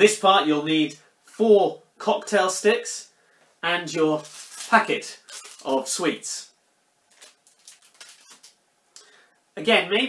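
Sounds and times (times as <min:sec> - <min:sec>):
plastic packet crinkling: 0:04.1 - 0:06.0, 0:07.1 - 0:08.6.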